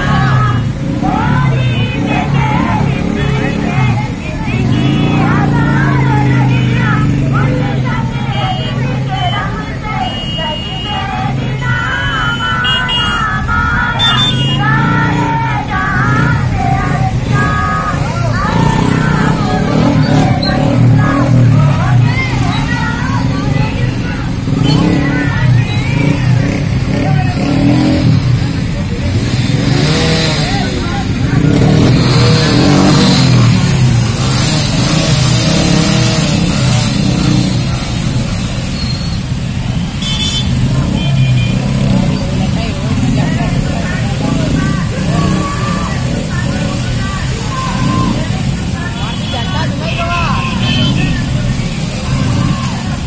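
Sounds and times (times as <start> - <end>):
crowd talking: 0.0 - 53.0
motorcycle engines running: 0.0 - 53.0.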